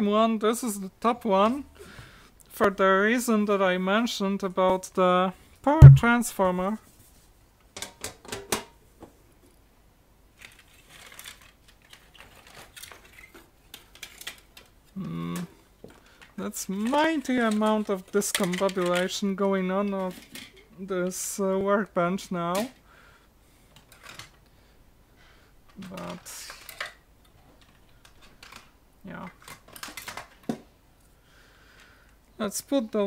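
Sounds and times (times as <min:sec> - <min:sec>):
person speaking: 0:05.7 - 0:06.7.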